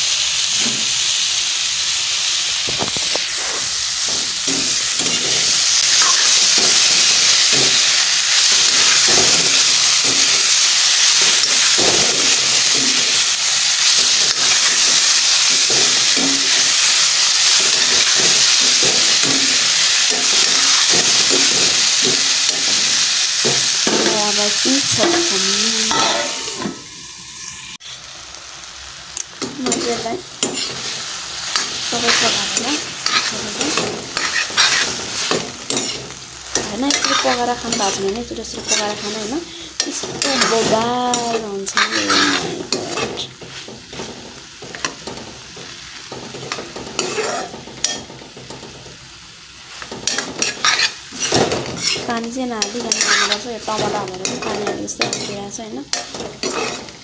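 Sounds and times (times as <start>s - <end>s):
vegetables sizzling in hot oil: 0.0s - 57.0s
steel spoon scraping a pan: 2.8s - 28.0s, 29.4s - 48.8s, 49.7s - 57.0s.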